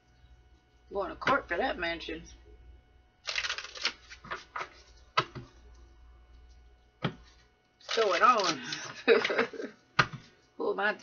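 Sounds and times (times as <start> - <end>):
cards being shuffled: 3.3 - 5.4, 7.3 - 8.9.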